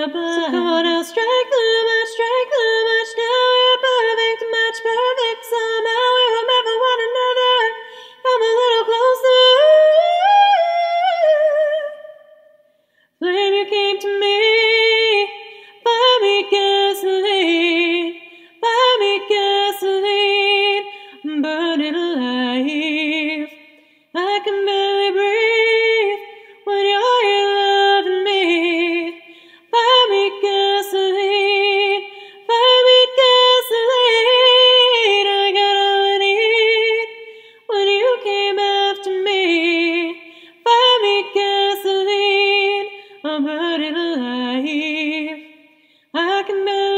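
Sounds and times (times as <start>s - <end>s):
woman singing a cappella: 0.0s - 46.9s.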